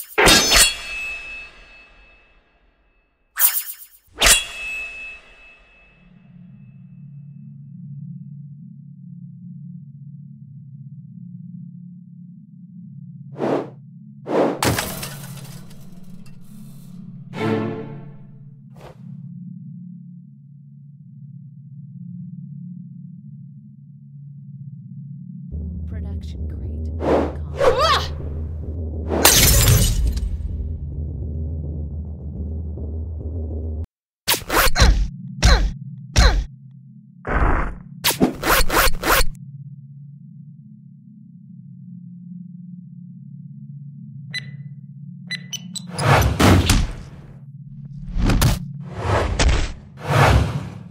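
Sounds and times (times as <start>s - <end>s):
rasping swish: 13.4s - 14.6s, 37.6s - 39.4s, 45.9s - 50.9s
whooshes: 13.4s - 14.6s, 48.0s - 50.9s
crash with shattering: 14.6s - 16.3s, 29.2s - 30.4s.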